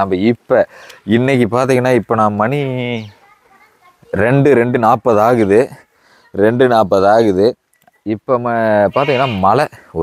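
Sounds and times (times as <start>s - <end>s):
man speaking: 0.0s - 3.2s, 4.2s - 10.0s.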